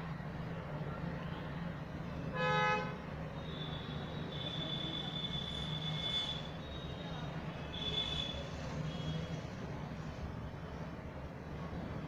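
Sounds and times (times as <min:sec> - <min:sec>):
thin high steady tone: 0:03.2 - 0:10.2.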